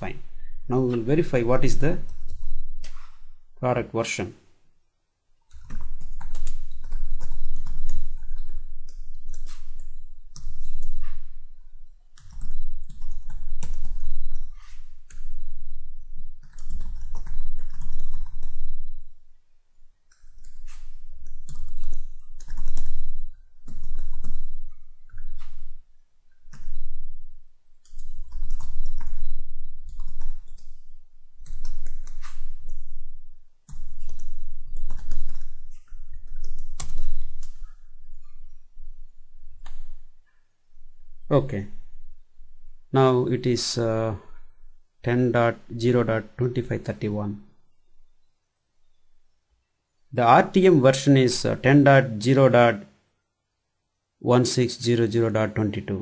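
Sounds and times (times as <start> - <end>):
low hum: 0.0 - 3.6, 5.6 - 45.8
typing on computer keyboard: 5.5 - 11.0, 12.2 - 15.3, 16.4 - 18.7, 20.1 - 25.6, 27.8 - 29.2, 29.8 - 30.8, 31.4 - 32.8, 33.7 - 37.7.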